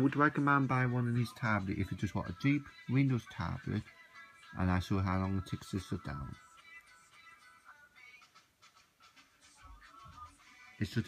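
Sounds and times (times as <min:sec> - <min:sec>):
faint background music and singing: 0:00.0 - 0:11.0.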